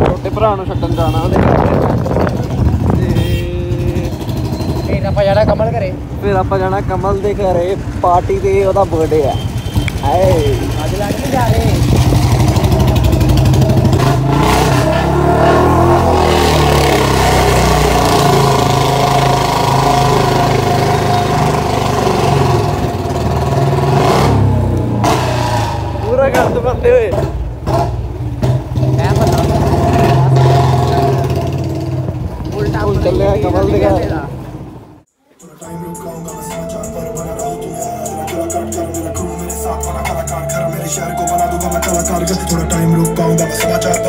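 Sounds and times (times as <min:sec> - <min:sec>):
motorcycle engine running: 0:00.0 - 0:05.9, 0:07.4 - 0:15.0, 0:15.8 - 0:25.2
voices: 0:00.0 - 0:13.4.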